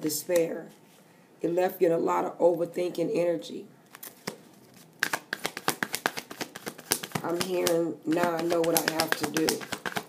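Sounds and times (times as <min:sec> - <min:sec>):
cards being shuffled: 0:03.9 - 0:10.0.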